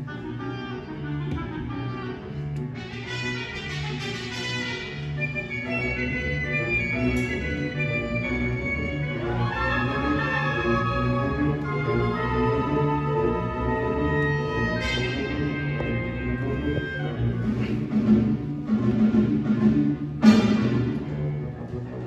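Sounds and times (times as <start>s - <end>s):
concert band playing: 0.0s - 21.9s.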